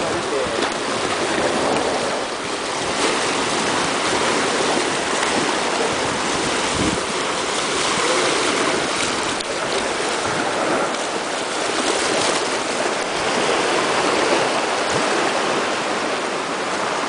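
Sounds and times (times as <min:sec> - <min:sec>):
small waves lapping on rocks: 0:00.0 - 0:17.0.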